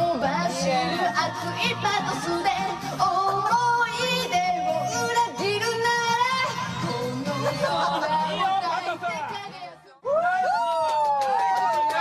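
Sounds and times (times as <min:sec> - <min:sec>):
loud backing track: 0:00.0 - 0:09.9
woman singing karaoke: 0:00.0 - 0:10.0.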